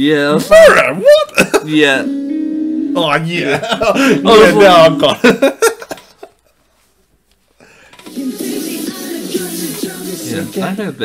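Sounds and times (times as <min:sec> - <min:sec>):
faint room sound: 0:00.0 - 0:11.0
person laughing: 0:01.1 - 0:01.8, 0:03.4 - 0:06.3.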